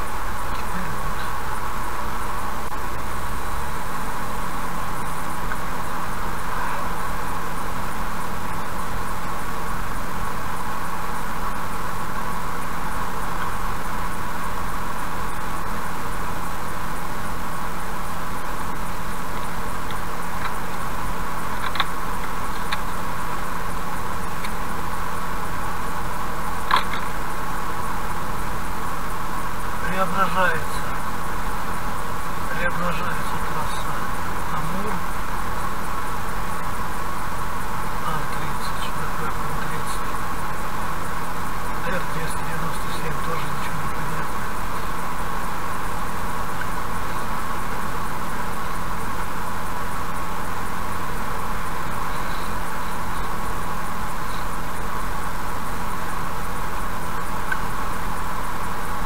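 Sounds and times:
car road and engine noise: 0.0s - 59.0s
sharp clicks: 21.6s - 23.0s, 26.7s - 27.2s.

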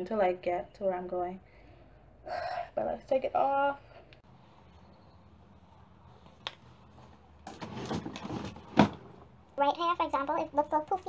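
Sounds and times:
fabric rustling and scraping: 5.6s - 9.0s.

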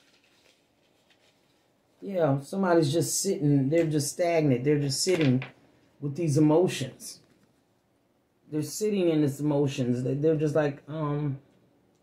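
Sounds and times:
paper pages rustling: 0.0s - 1.8s.

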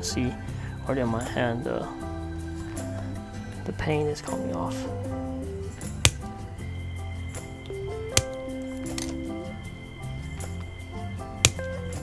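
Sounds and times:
gentle background music: 0.0s - 12.0s
nippers snipping plastic clicks: 5.8s - 6.3s, 8.1s - 9.2s, 11.4s - 11.7s.

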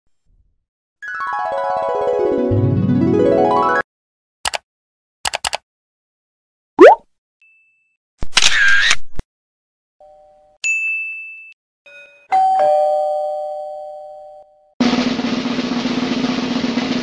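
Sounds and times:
ding-dong doorbell chime: 10.0s - 14.8s.

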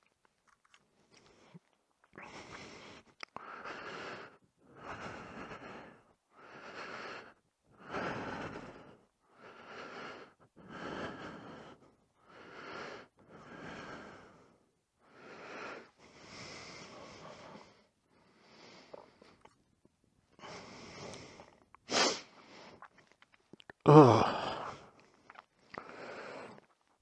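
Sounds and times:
person breathing: 1.2s - 19.5s, 20.3s - 22.9s, 23.9s - 26.8s.

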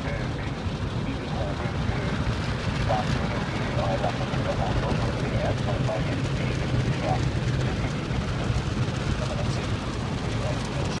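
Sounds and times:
low hum of wash machinery: 0.0s - 11.0s.

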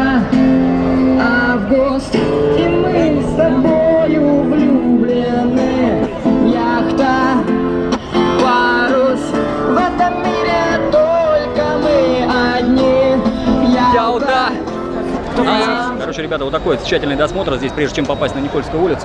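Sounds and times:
person singing pop song: 0.0s - 16.0s
acoustic guitar strumming: 0.0s - 18.1s.

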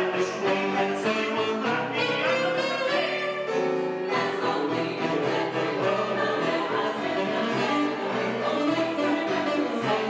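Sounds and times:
piano accompaniment: 0.0s - 10.0s
female choir singing: 0.1s - 10.0s.

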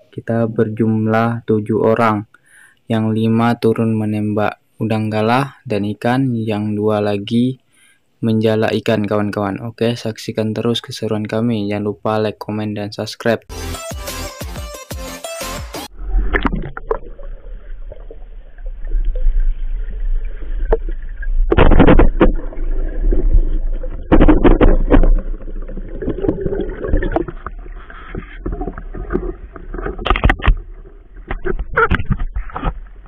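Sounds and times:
muffled underwater rumble: 15.9s - 33.0s
water swishes and knocks: 15.9s - 33.0s.

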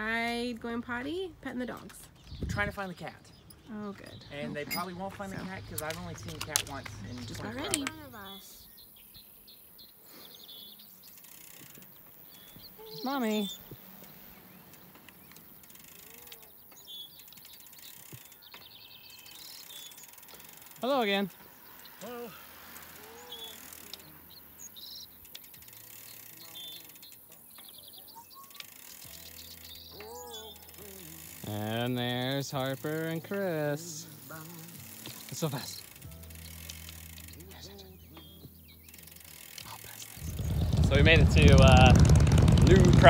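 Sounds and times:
bird chirps: 7.0s - 20.6s, 21.3s - 31.5s, 37.5s - 41.0s.

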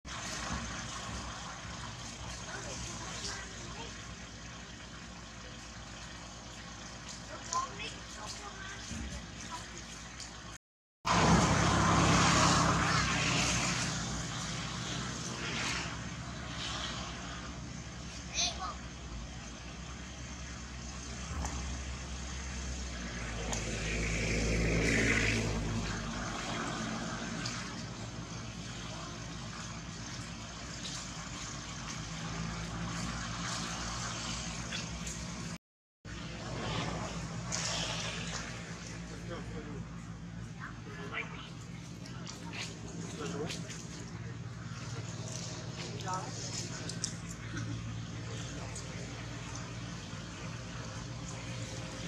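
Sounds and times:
vehicle engine running: 0.1s - 52.0s.

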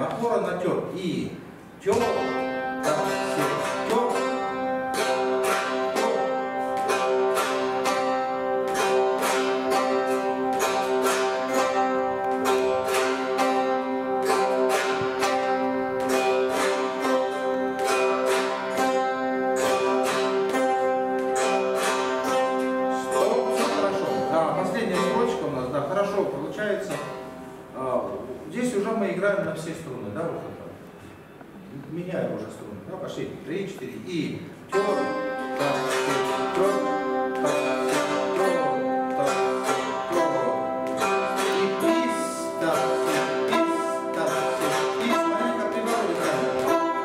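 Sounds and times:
plucked zithers repeating rhythm: 0.0s - 30.1s, 33.0s - 47.0s.

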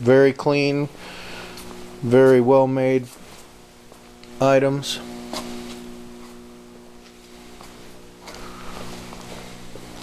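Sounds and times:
steady multi-pitch hum: 0.0s - 10.0s.

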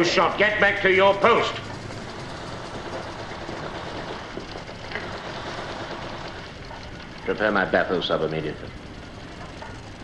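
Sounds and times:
faint fine crackle: 1.6s - 10.0s.

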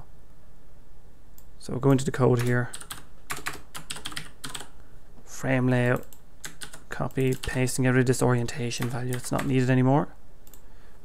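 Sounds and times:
keyboard typing clicks: 2.4s - 4.7s, 5.8s - 7.6s, 8.8s - 9.6s.

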